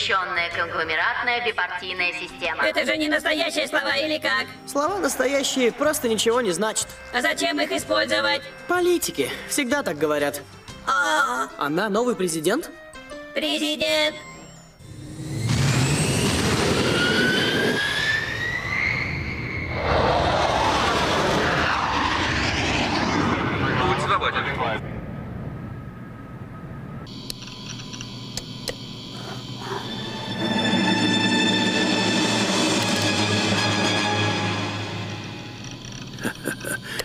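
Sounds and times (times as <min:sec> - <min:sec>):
music: 0:00.0 - 0:15.3, 0:29.5 - 0:36.1
jet-like whooshes rising in pitch: 0:14.8 - 0:24.9, 0:29.9 - 0:35.6.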